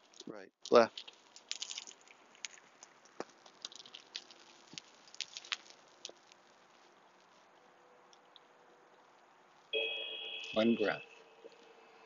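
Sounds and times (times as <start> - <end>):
small clicks and crackles: 0.0 - 9.8.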